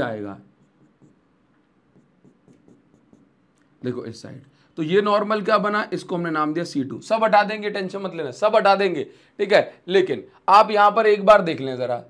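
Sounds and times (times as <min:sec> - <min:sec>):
pen tapping on a board: 0:00.6 - 0:03.4.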